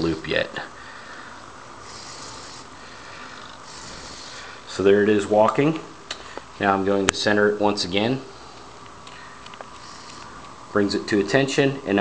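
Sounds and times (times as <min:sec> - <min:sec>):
faint hiss: 0:00.0 - 0:12.0
robot servos whirring: 0:01.8 - 0:02.7, 0:09.8 - 0:10.4.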